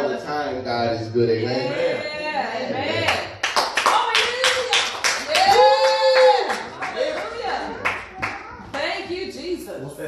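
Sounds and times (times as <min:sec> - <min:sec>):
man's voice: 0:00.0 - 0:02.0
group of people clapping: 0:03.0 - 0:09.0.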